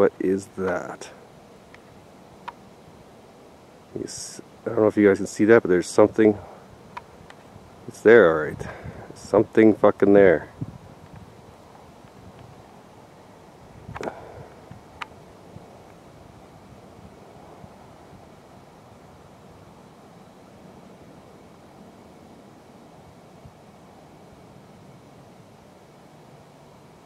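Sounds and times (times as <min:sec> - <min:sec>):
low outdoor hiss and rumble: 0:00.0 - 0:27.0.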